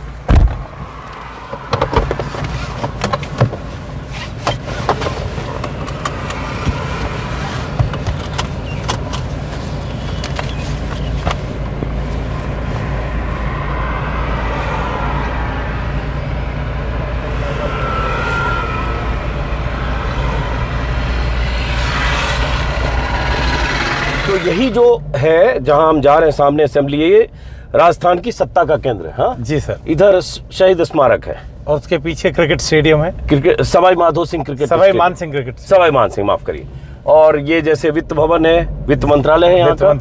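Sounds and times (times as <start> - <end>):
car engine running: 0.0 - 27.7.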